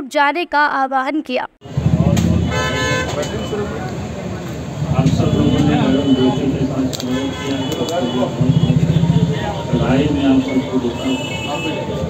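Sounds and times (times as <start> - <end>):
low rumble of street noise: 1.6 - 12.0
vehicle horn: 2.0 - 3.9, 4.9 - 12.0.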